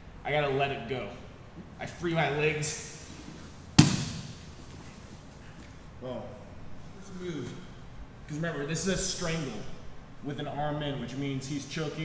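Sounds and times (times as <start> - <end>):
sharp thump: 3.8 - 4.4
soft knocks on training mat: 3.8 - 4.4.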